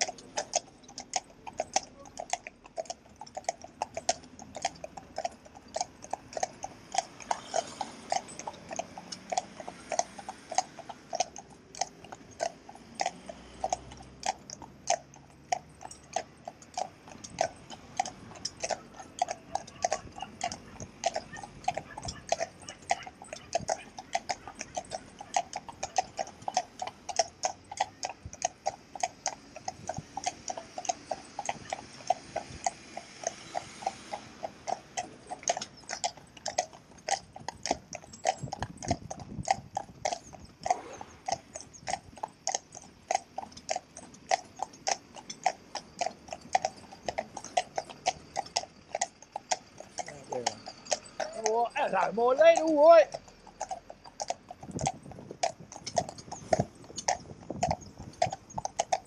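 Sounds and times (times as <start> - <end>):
hooves clip-clopping on road: 0.0 - 59.0
passing traffic: 0.0 - 59.0.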